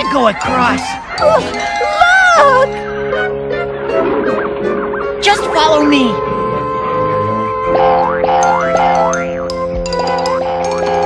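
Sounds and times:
background music with held notes: 0.0s - 11.0s
cartoon boing sound effects: 6.9s - 11.0s.

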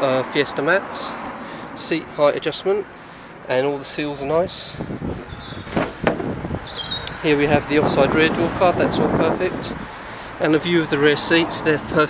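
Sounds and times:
high-pitched squeaks: 5.5s - 7.0s.

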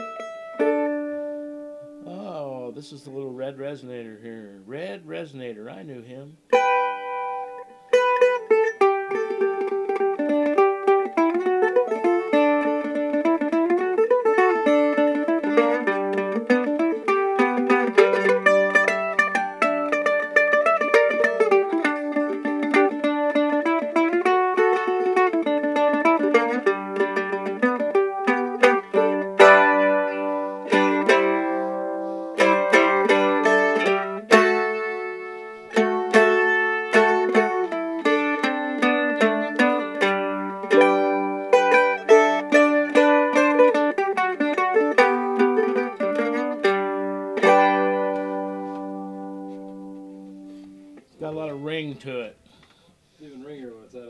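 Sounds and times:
mandolin played with a pick: 0.0s - 2.3s, 6.4s - 53.2s.

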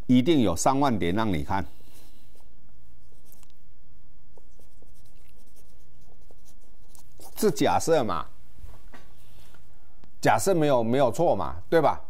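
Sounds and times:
marker pen scratching on paper: 1.8s - 3.6s, 4.3s - 7.9s.

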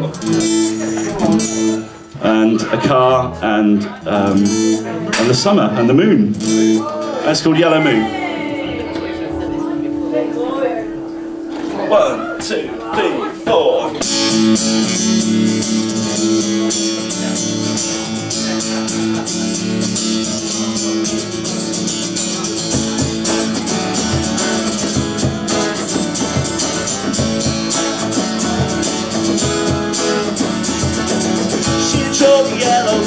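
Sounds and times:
strummed acoustic guitars: 0.0s - 33.0s
low thumping beat: 22.6s - 33.0s.

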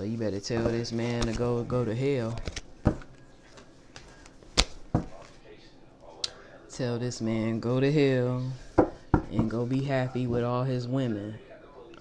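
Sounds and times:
cards tapping on tabletop: 2.4s - 3.1s.

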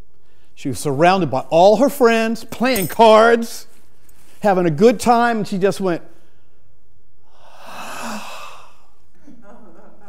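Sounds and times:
man sighing breathily: 7.2s - 9.0s.

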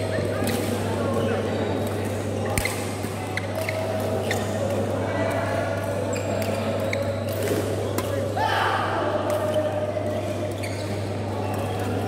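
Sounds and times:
shoes squeaking on court floor: 1.2s - 4.8s, 5.9s - 7.4s, 9.5s - 12.0s.

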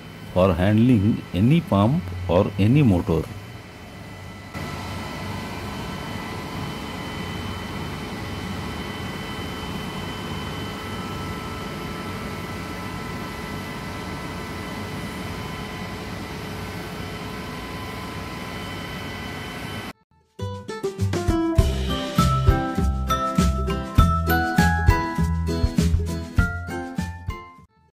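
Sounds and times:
electric water pump humming: 0.0s - 20.0s.

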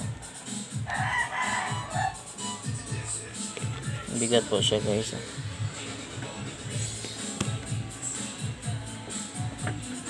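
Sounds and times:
background music with steady beat: 0.0s - 10.0s
rooster crowing: 0.7s - 2.7s.

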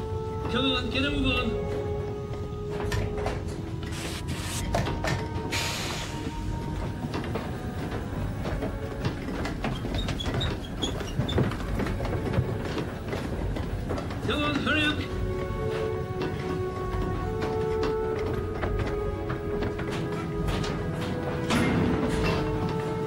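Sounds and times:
film music score: 0.0s - 23.0s
metallic clanks and knocks: 6.8s - 23.0s.

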